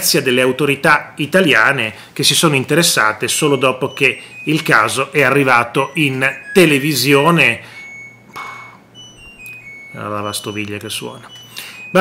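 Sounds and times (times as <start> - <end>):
dishwasher beeping melody: 2.2 - 12.0.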